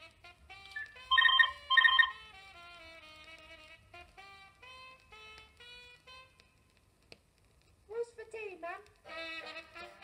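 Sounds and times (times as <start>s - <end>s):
faint music from a record: 0.0s - 10.0s
telephone ringtone: 0.8s - 2.2s.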